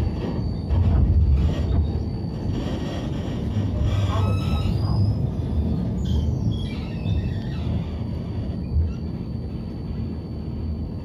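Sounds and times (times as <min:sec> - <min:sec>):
tram rumbling: 0:00.0 - 0:11.0.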